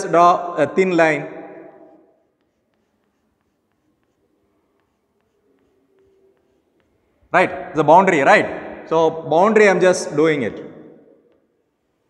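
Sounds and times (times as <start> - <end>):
chalk tapping and scratching: 2.1 - 7.3, 11.2 - 12.0.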